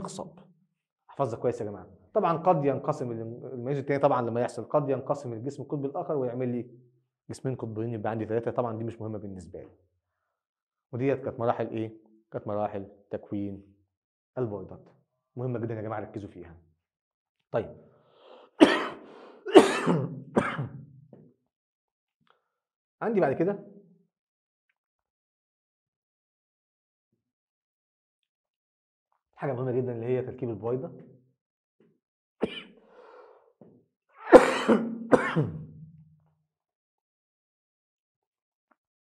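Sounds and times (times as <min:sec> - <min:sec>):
man coughing: 0:18.6 - 0:20.8, 0:32.4 - 0:32.7, 0:34.3 - 0:35.7.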